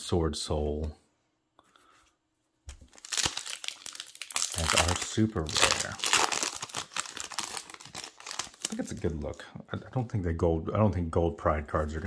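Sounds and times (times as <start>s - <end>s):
foil pack crinkling and tearing: 2.8s - 9.2s.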